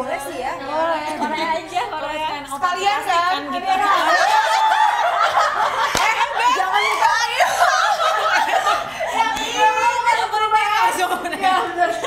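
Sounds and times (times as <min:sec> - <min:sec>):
women laughing: 0:03.6 - 0:12.0.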